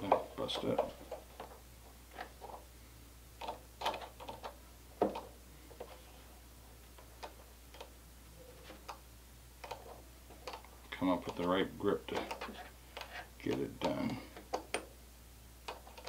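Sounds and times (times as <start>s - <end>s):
faint low hum: 0.0s - 16.0s.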